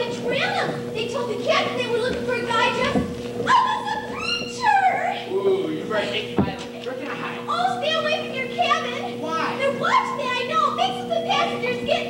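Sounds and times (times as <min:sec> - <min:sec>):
distant actors' voices: 0:00.0 - 0:12.0
steady hum: 0:00.0 - 0:12.0.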